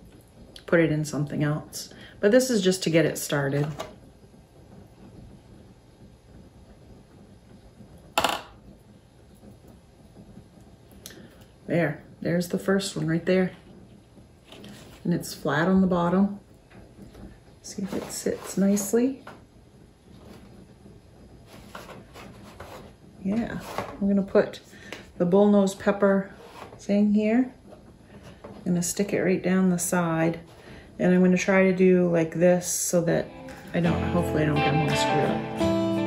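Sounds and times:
room hum: 0.0s - 36.0s.

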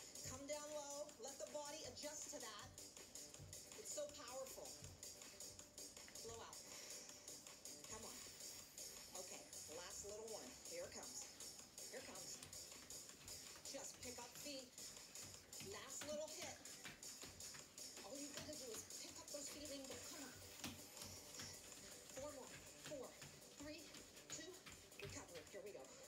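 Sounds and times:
faint workout music: 0.0s - 26.0s
footfalls on tiled floor: 12.0s - 26.0s
person talking: 15.6s - 16.7s, 18.0s - 20.5s.

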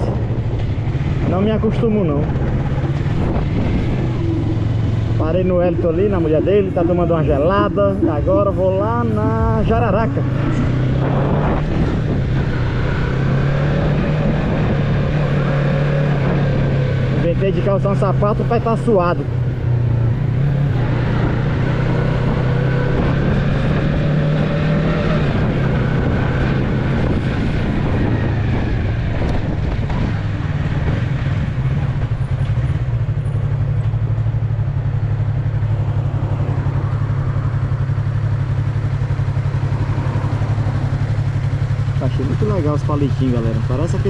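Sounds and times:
motorcycle engine running: 0.0s - 44.0s.

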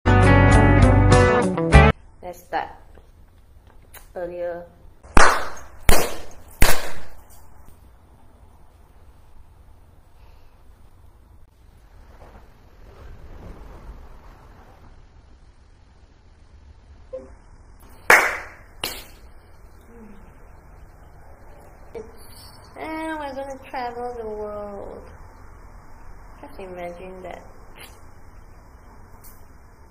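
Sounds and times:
sharp hand claps: 5.1s - 7.2s, 18.0s - 19.2s.

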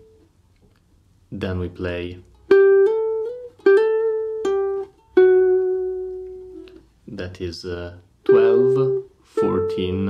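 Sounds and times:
guitar single-note phrase: 8.3s - 10.0s.

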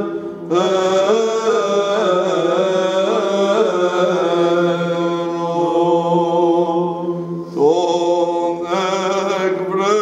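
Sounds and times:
man chanting liturgical reading: 0.0s - 6.9s, 7.5s - 10.0s.

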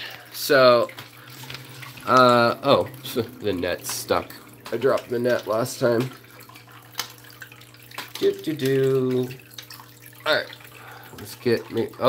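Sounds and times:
aquarium water trickling: 0.0s - 12.0s
low hum: 0.8s - 8.0s.

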